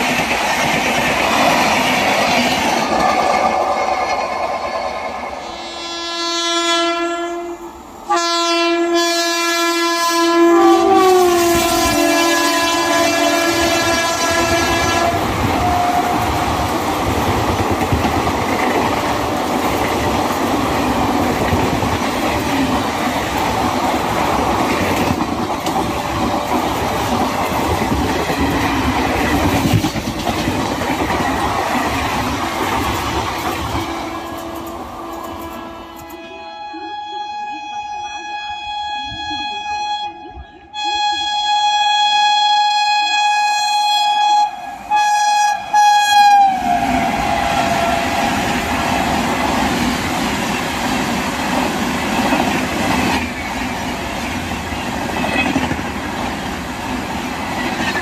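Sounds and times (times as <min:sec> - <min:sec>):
train wheels clattering: 0:00.0 - 0:05.3, 0:13.6 - 0:36.2
locomotive horn blowing: 0:05.4 - 0:16.7, 0:33.7 - 0:49.0.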